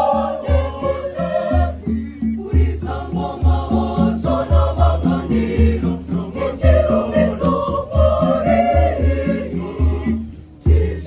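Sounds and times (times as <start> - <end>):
choir singing: 0.0 - 11.0
strong low beat: 0.0 - 11.0.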